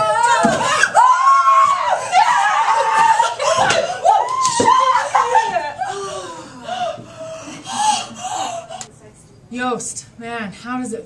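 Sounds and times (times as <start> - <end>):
people whooping and laughing: 0.0 - 8.9.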